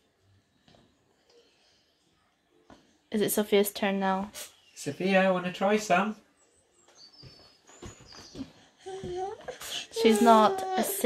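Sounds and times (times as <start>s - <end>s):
baby high-pitched vocalization: 8.9s - 11.0s.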